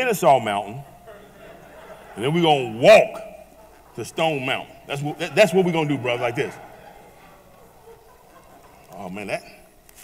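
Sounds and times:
man talking: 0.0 - 0.9, 2.1 - 6.8, 8.9 - 9.7.

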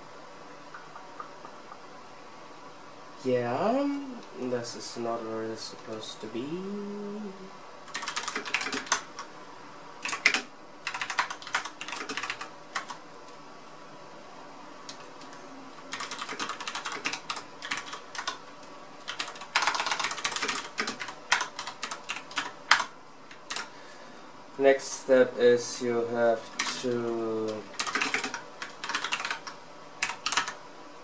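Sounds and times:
keyboard typing clicks: 7.9 - 9.3, 10.0 - 13.0, 26.6 - 30.6.

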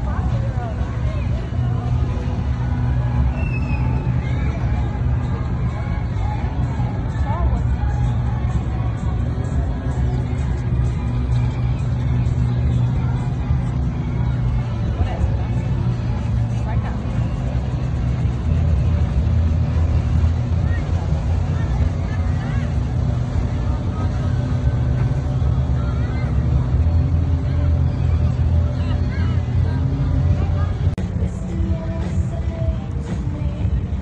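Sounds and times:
low rumble: 0.0 - 34.0
people's voices: 0.0 - 34.0.

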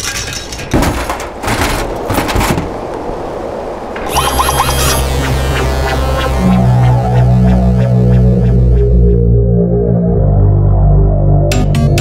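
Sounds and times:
low electronic throbbing hum: 4.1 - 11.5.

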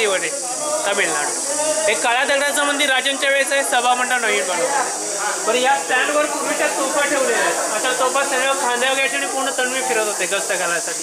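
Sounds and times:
steady high hiss: 0.0 - 11.0.

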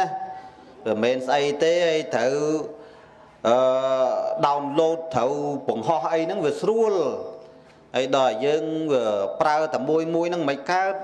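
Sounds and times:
man preaching in chant-like voice: 0.0 - 11.0.

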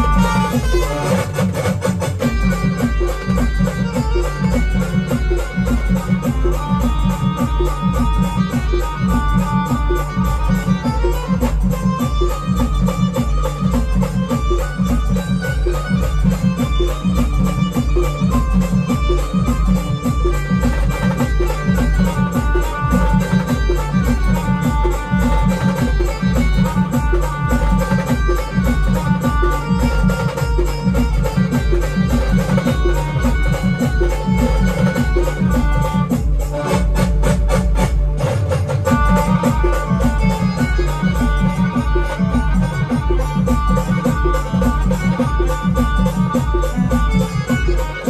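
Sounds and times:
driving drum beat: 0.0 - 48.0
electronic keyboard melody: 0.0 - 48.0.

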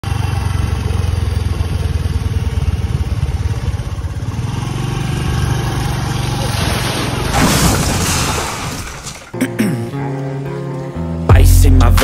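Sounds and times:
motor scooter engine running: 0.0 - 7.2.

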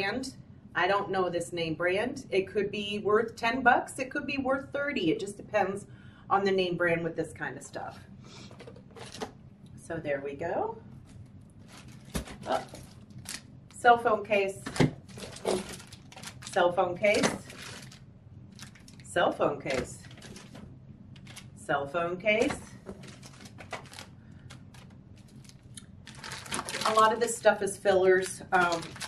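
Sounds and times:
plastic packaging rustling: 8.5 - 9.4, 11.0 - 13.5, 14.6 - 19.1, 19.7 - 21.6, 22.4 - 29.0.

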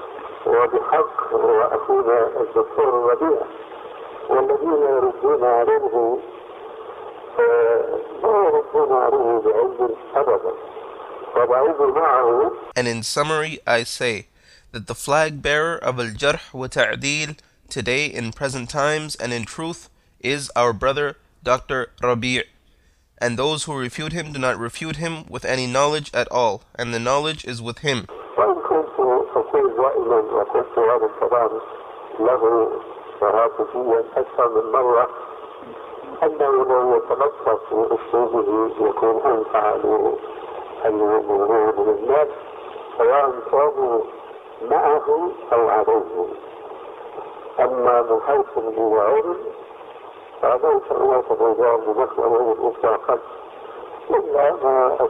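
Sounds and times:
man talking on old recording: 0.0 - 49.7, 50.3 - 55.0
man speaking muffled: 0.4 - 3.5, 4.2 - 6.3, 7.4 - 10.6, 11.3 - 22.5, 23.2 - 46.5, 47.5 - 49.6, 50.4 - 53.4, 54.0 - 55.0.

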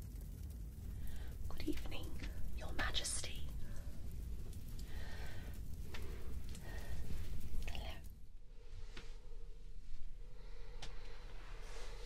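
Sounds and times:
low steady hum: 0.0 - 12.0
woman whispering: 1.4 - 4.0, 7.6 - 8.1.

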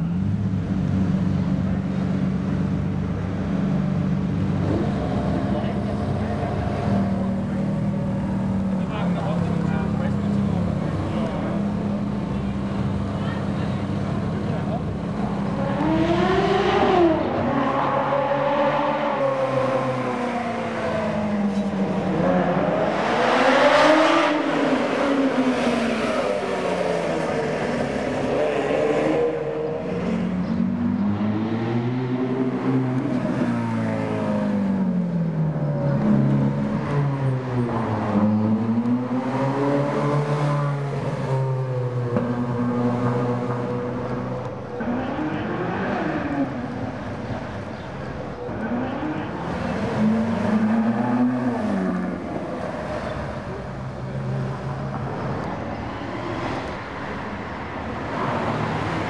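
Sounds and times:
sports cars revving past: 0.0 - 59.0.

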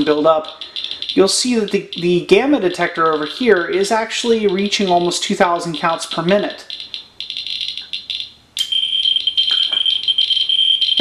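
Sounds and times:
high-pitched counter buzz: 0.0 - 11.0
radiation counter crackling: 0.0 - 11.0.

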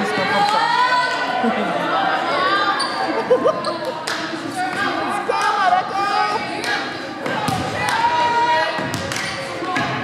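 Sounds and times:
voices talking and calling out: 0.0 - 10.0.

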